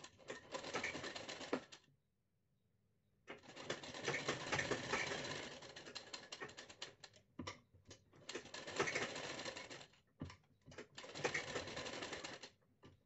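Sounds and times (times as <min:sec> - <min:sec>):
sewing machine running: 0:03.5 - 0:05.8, 0:08.4 - 0:09.9, 0:11.1 - 0:12.4.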